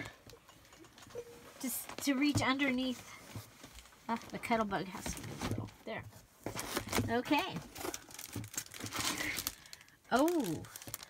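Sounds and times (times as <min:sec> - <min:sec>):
packaging crinkling and rustling: 0:06.4 - 0:11.0.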